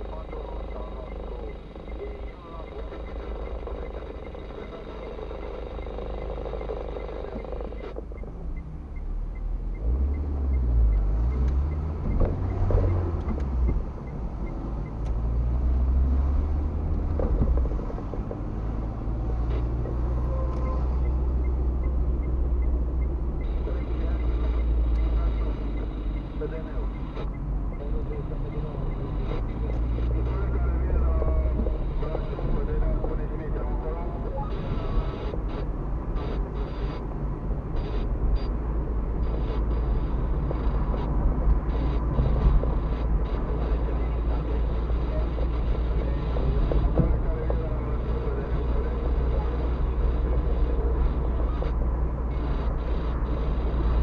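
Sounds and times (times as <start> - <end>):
car engine rumble: 0.0 - 54.0
road noise: 0.0 - 54.0.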